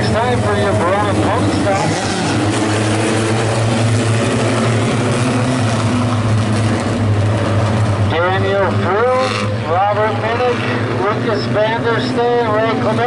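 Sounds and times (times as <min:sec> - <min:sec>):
race car engines droning: 0:00.0 - 0:13.0.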